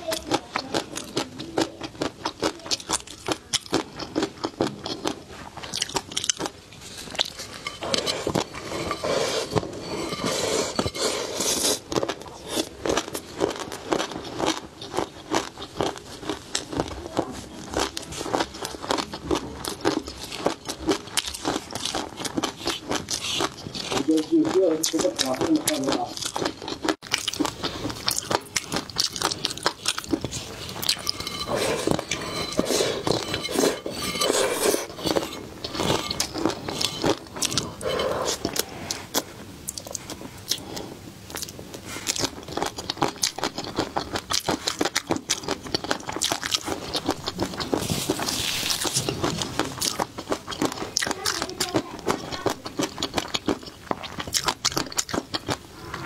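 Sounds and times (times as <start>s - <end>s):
crispy fish roe crunching: 0.0s - 56.0s
crisp wet chewing crunches: 34.9s - 56.0s.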